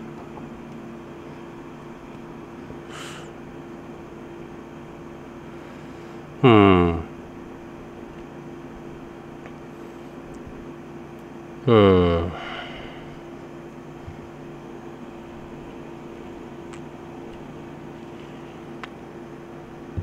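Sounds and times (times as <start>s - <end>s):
air conditioner hum: 0.0s - 20.0s
man humming: 6.4s - 7.2s, 11.6s - 13.2s.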